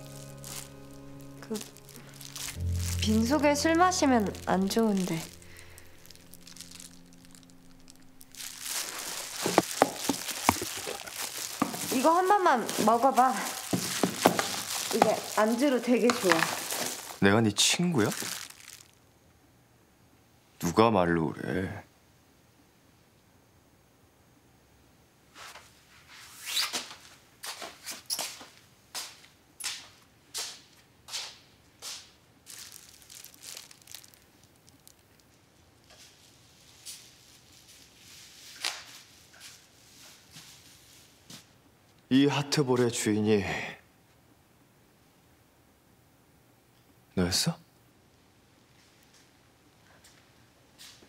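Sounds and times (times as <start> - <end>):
plastic crinkling and rustling: 0.0 - 19.0, 32.4 - 41.5
footsteps scuffing on hard floor: 8.4 - 17.2, 41.2 - 41.5.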